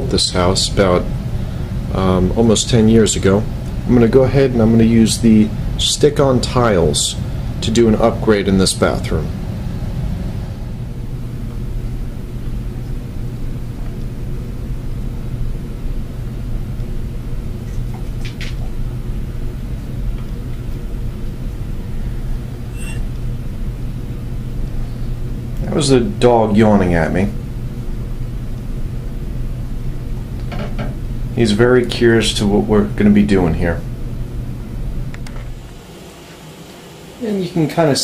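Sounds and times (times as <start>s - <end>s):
low rumbling hum: 0.0s - 38.0s.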